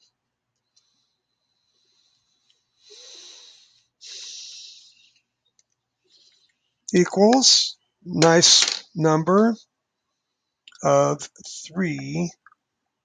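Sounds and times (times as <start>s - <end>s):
person breathing: 0.9s - 5.2s.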